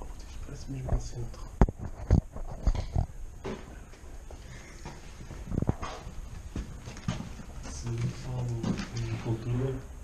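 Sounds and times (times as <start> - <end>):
footsteps on wooden floorboards: 3.4 - 9.0.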